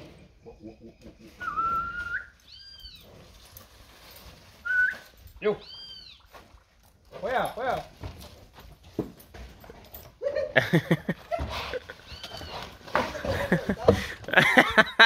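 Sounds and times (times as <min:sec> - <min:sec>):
men calling and shouting: 0:07.1 - 0:08.0, 0:12.9 - 0:15.0.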